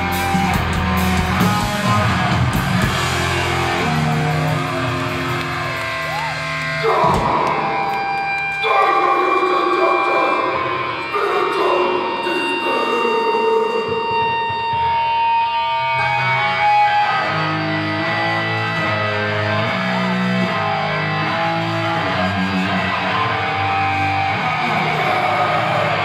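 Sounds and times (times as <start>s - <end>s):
punk band playing live: 0.0s - 26.0s
ringing guitar notes: 0.0s - 26.0s.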